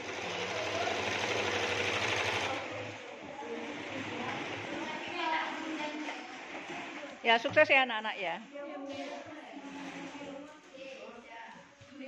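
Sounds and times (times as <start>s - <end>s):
sewing machine stitching: 0.0s - 3.0s.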